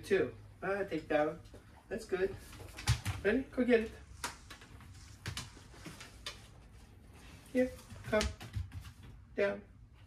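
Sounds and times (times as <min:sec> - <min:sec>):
dog nails clicking on hard floor: 0:02.5 - 0:03.2, 0:04.2 - 0:06.7, 0:07.8 - 0:09.2.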